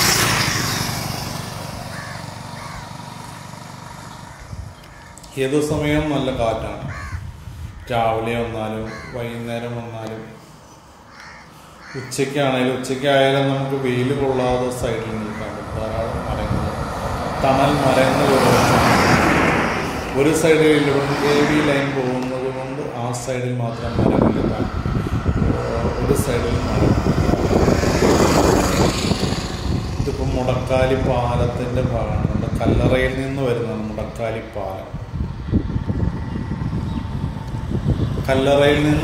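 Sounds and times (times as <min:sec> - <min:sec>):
small car driving past: 0:00.0 - 0:05.1, 0:13.7 - 0:32.8.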